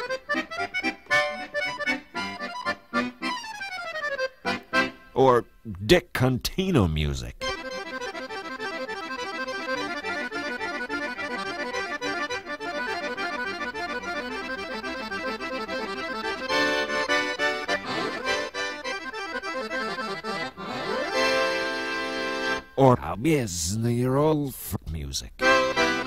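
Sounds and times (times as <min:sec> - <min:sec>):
accordion playing: 0:00.0 - 0:05.5, 0:06.8 - 0:26.0.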